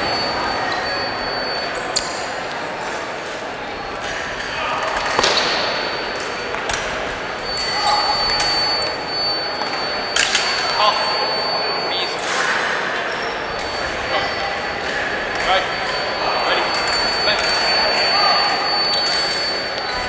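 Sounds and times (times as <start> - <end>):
chatter in echoing hall: 0.0 - 20.0
high electronic tone: 3.8 - 20.0.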